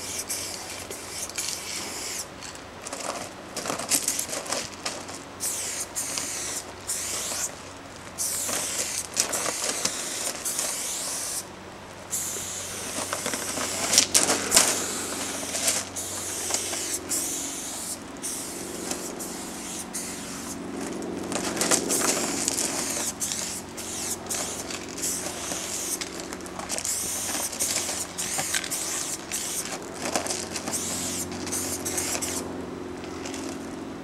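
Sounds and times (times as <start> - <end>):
spray paint can hissing: 0.0 - 2.4, 5.4 - 11.5, 12.1 - 20.6, 21.3 - 32.4.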